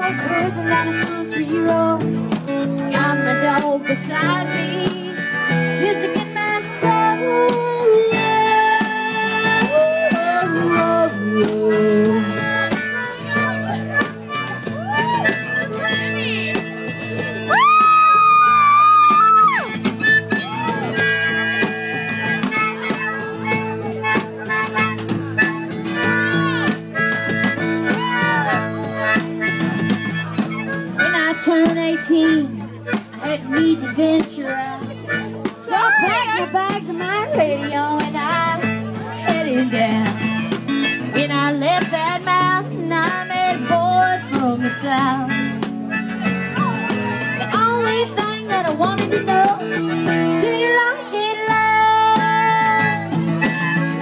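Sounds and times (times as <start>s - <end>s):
harmonica solo: 0.0s - 54.0s
live backing music with beat: 0.0s - 54.0s
strummed acoustic guitar: 0.0s - 54.0s.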